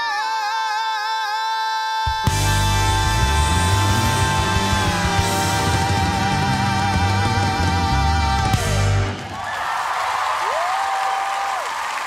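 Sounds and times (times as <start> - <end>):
audience applauding and cheering: 4.0 - 12.0.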